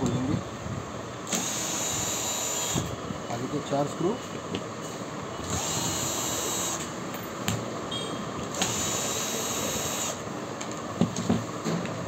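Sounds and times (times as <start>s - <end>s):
cordless drill whining: 1.3s - 2.9s, 5.4s - 6.9s, 8.5s - 10.2s.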